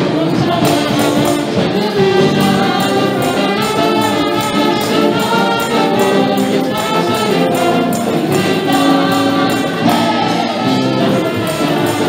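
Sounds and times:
women singing praise song: 0:00.0 - 0:12.0
band with percussion beat: 0:00.3 - 0:12.0.

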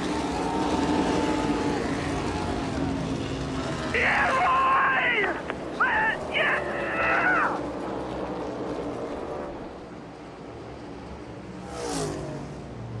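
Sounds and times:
race car passing by: 0:00.0 - 0:04.4, 0:06.2 - 0:13.0
crew shouting: 0:03.9 - 0:07.8.

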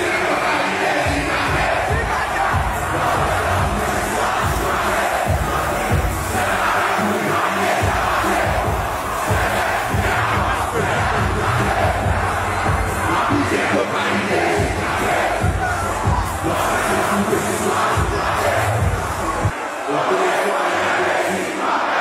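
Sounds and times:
crowd shouting and cheering: 0:00.0 - 0:22.0
music with heavy bass pulse: 0:01.0 - 0:19.5.

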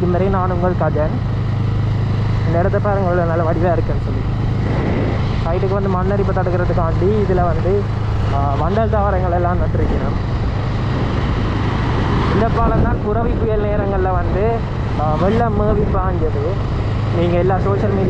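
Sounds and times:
man talking: 0:00.0 - 0:01.3, 0:02.4 - 0:04.3, 0:05.4 - 0:10.2, 0:12.3 - 0:18.0
motorcycle engine running: 0:00.0 - 0:18.0.

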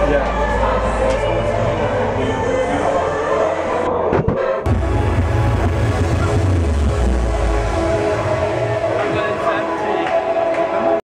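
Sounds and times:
electronic dance music: 0:00.0 - 0:11.0
heavy bass beat: 0:04.7 - 0:10.3.

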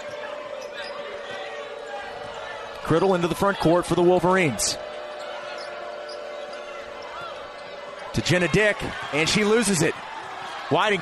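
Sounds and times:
crowd murmur: 0:00.0 - 0:11.0
commentator speaking: 0:02.8 - 0:04.8, 0:08.2 - 0:09.9.

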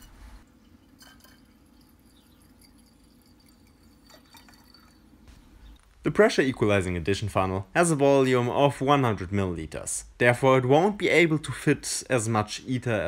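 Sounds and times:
liquid trickling into glass: 0:00.4 - 0:05.3.

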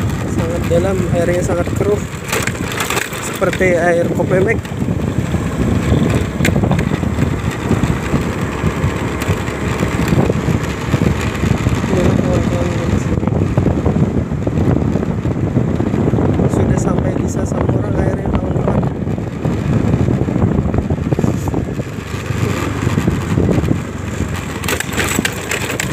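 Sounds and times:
tyre noise: 0:00.0 - 0:16.7, 0:19.4 - 0:25.9
scooter engine running: 0:00.0 - 0:25.9
wind buffeting microphone: 0:00.0 - 0:25.9.

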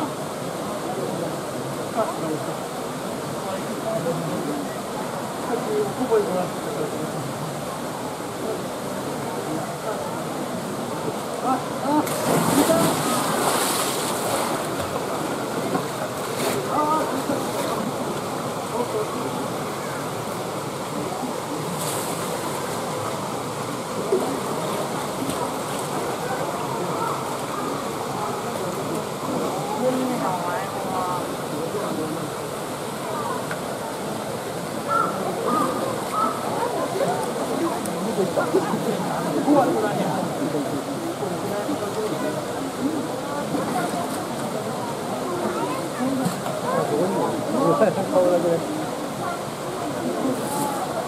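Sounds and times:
crowd chatter: 0:00.0 - 0:51.0
polar bear splashing into water: 0:11.9 - 0:15.2
water sloshing: 0:11.9 - 0:18.4.

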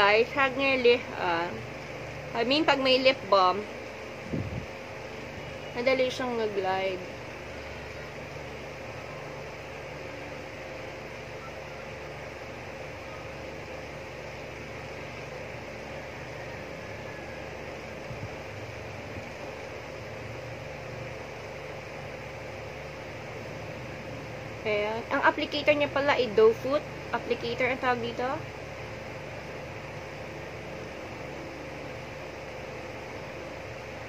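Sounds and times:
appliance hum and hiss: 0:00.0 - 0:34.0.

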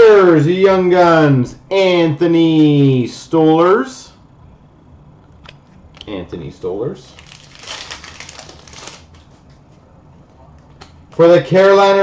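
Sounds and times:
cards crinkling and shuffling: 0:07.1 - 0:09.5.

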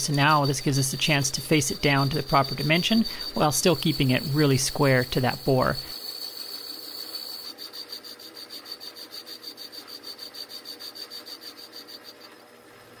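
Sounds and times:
lathe tool scraping metal: 0:00.0 - 0:12.9
metal lathe whining: 0:00.0 - 0:13.0.

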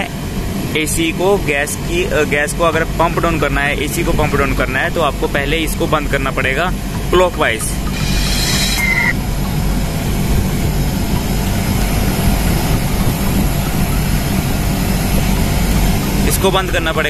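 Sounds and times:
air conditioner unit humming: 0:00.0 - 0:17.0
short whistle: 0:07.8 - 0:09.2.

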